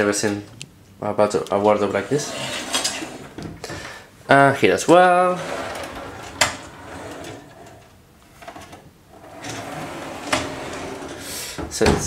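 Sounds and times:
sliding wardrobe doors rolling: 1.7s - 3.8s, 4.9s - 12.0s.

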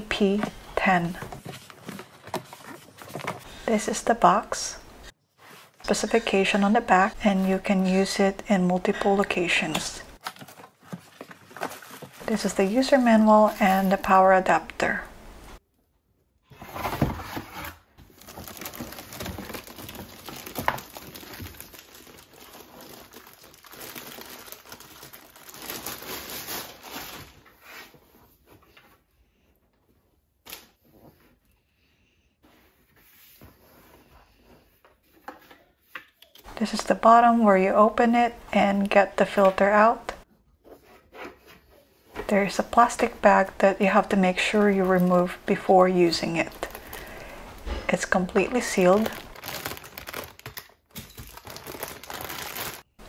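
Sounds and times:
plastic bag crinkling and rustling: 10.2s - 14.3s, 18.0s - 28.2s, 42.8s - 53.0s.

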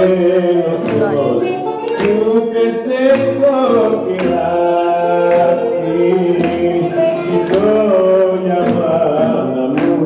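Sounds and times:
singing over music: 0.0s - 10.0s
sharp beat: 0.1s - 10.0s.

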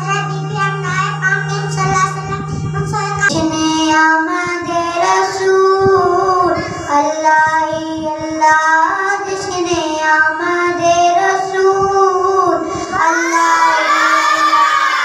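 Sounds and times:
boy singing into a microphone: 0.0s - 15.0s
low hum: 0.0s - 15.0s.

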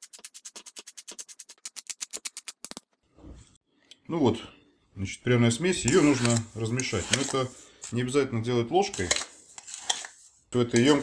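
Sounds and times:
pepper mill grinding: 5.8s - 8.0s, 8.8s - 11.0s.

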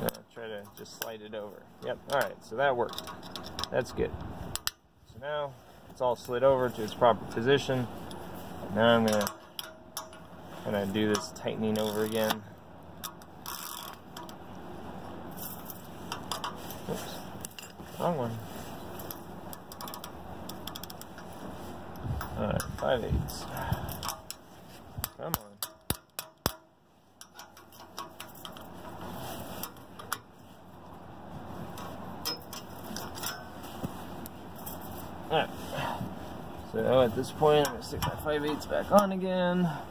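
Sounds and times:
metal wrench clicking: 2.8s - 3.8s, 9.0s - 10.3s, 13.0s - 14.4s, 19.0s - 21.3s, 25.0s - 29.0s, 31.8s - 33.5s
wrench scraping on steel: 2.8s - 3.8s, 7.4s - 14.5s, 15.3s - 30.5s, 31.6s - 33.9s
ratchet wrench clicking: 13.0s - 14.4s, 19.1s - 21.3s.

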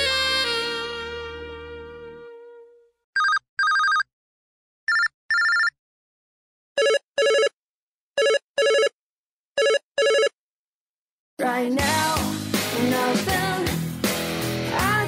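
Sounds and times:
phone ringtone beeps: 3.2s - 4.1s, 4.9s - 5.8s, 6.8s - 7.6s, 8.2s - 9.0s, 9.6s - 10.4s.

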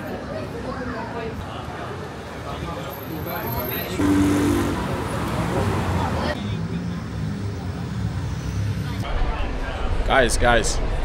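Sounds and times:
vehicle engines running: 2.7s - 10.0s.

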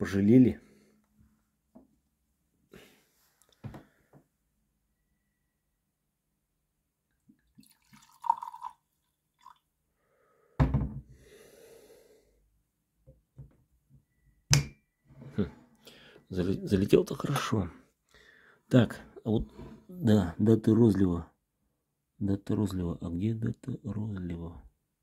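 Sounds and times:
liquid pouring into a glass: 7.4s - 9.7s.

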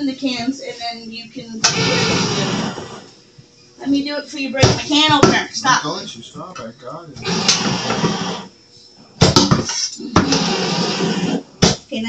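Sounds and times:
electric can opener motor running: 1.6s - 3.1s, 7.2s - 8.5s, 9.3s - 11.4s.

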